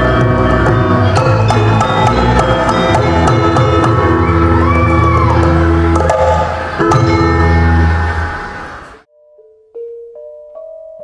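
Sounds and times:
bronze metallophones ringing: 0.0s - 11.0s.

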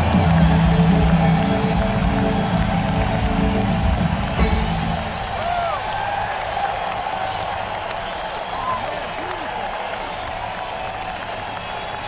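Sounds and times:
crowd clapping: 0.0s - 12.0s
crowd whoops and shouts: 0.0s - 12.0s.

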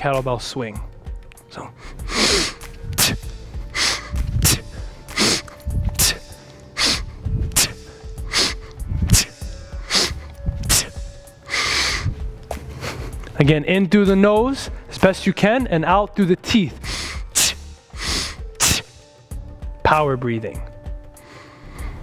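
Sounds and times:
man breathing hard: 1.6s - 13.4s, 16.8s - 19.1s, 21.1s - 22.0s.

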